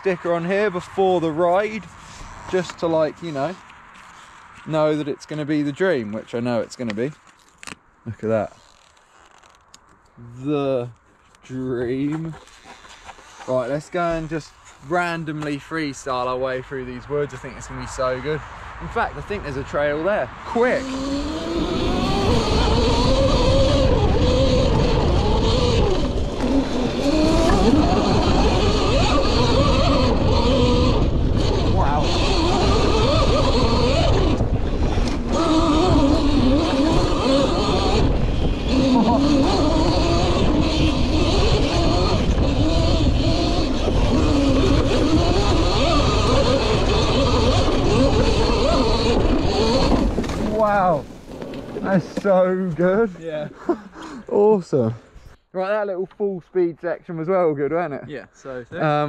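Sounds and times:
wind and rough ground rumble: 0:00.0 - 0:53.5
electric motor whine: 0:20.7 - 0:50.6.

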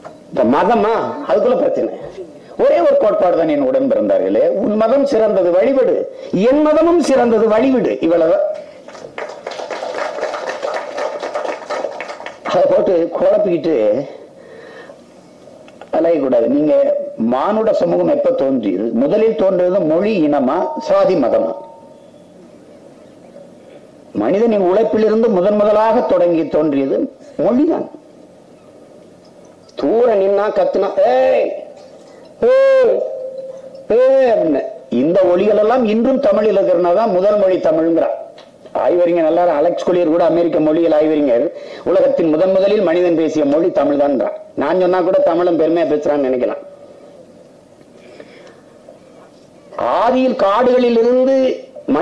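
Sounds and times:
audience applauding: 0:08.8 - 0:12.6
man shouting into microphone: 0:32.4 - 0:38.1.

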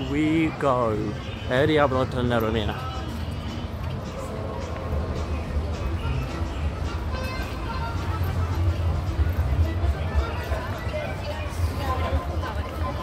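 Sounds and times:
voices of passing visitors: 0:00.0 - 0:13.0.

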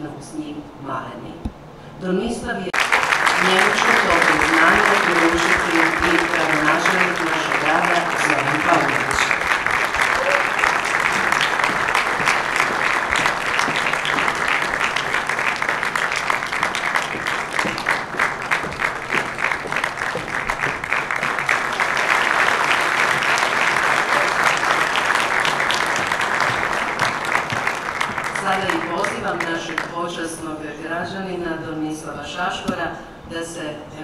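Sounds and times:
audience applauding: 0:02.8 - 0:30.0.

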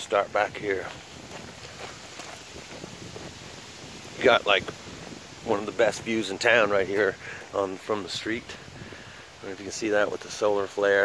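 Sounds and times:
faint steady rustling: 0:00.0 - 0:11.0
footsteps through dry leaves: 0:00.3 - 0:05.5.

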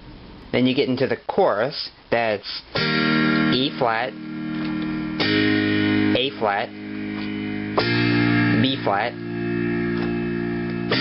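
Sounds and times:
electronic keyboard chords: 0:02.8 - 0:11.0.

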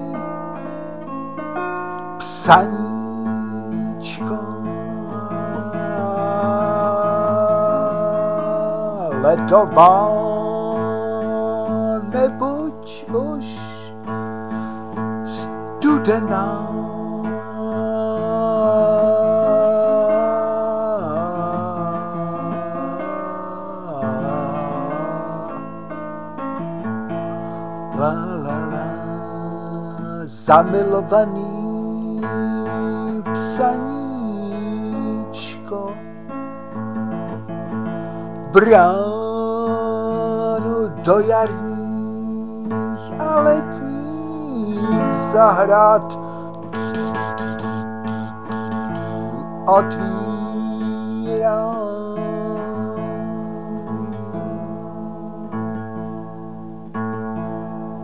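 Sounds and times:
person singing wordless notes: 0:00.0 - 0:14.1, 0:15.2 - 0:26.8, 0:27.4 - 0:36.3, 0:38.4 - 0:56.2
acoustic guitar plucked: 0:00.0 - 0:58.0.

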